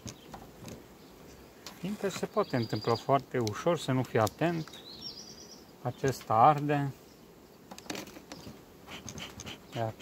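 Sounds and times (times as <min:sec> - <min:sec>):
bee smoker clicks: 0:00.0 - 0:06.9, 0:07.5 - 0:10.0
honeybees buzzing: 0:00.0 - 0:10.0.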